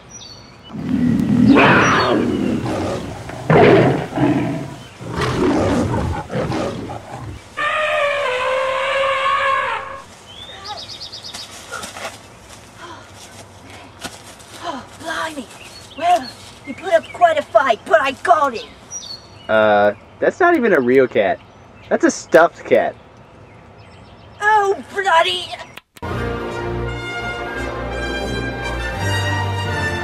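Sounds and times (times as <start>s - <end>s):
cats growling and screeching: 0.7s - 9.9s.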